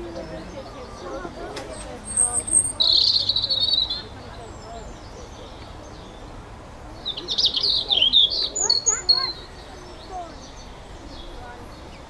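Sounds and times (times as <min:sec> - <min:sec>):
songbird singing: 0:00.0 - 0:12.0.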